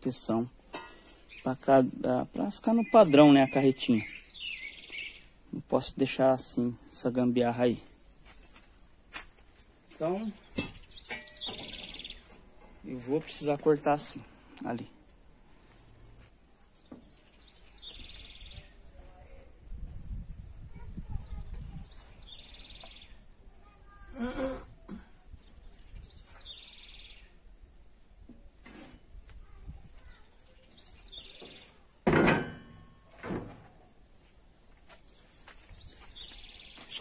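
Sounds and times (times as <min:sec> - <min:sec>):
bird chirping and trilling: 0:02.6 - 0:05.4, 0:10.4 - 0:12.3, 0:17.0 - 0:18.7, 0:21.2 - 0:23.2, 0:25.4 - 0:27.4, 0:30.1 - 0:31.8
metal grille clanking on wood: 0:10.5 - 0:12.8, 0:32.0 - 0:33.6
faint bird chirps: 0:16.8 - 0:18.8, 0:21.1 - 0:24.5.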